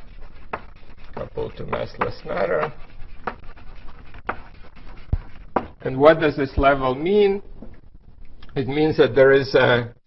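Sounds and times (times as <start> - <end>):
chalk tapping on blackboard: 0.0 - 6.8.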